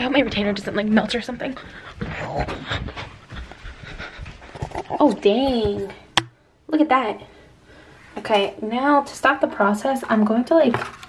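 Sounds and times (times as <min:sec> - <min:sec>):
close breathing: 0:01.6 - 0:05.0, 0:07.2 - 0:08.2.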